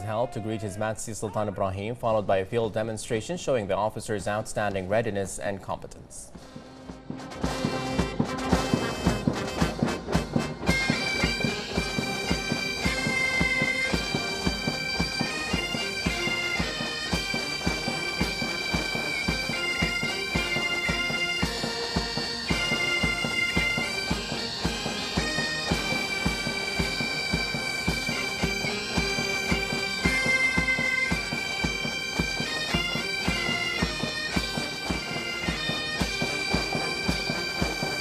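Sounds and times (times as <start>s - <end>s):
bagpipes with drone: 6.4s - 38.0s
regular drum beat: 6.4s - 38.0s.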